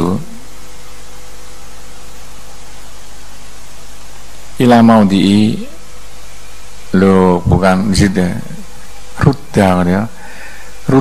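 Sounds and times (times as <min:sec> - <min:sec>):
faint low hum: 0:00.0 - 0:11.0
steady background hiss: 0:00.0 - 0:11.0.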